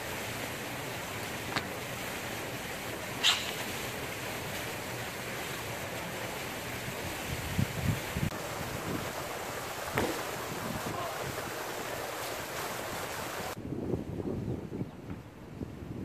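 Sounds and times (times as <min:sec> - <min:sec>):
wind rumbling on microphone: 0:06.8 - 0:11.7, 0:12.9 - 0:16.0.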